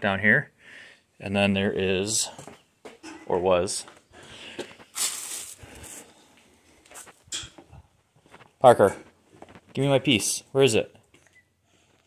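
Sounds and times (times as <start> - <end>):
plastic wrap crinkling: 4.8 - 6.1.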